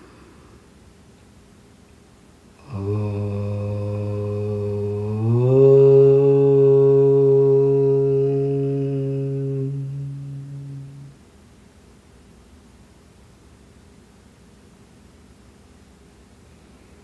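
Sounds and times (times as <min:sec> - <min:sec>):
man chanting a long note: 0:02.6 - 0:11.2.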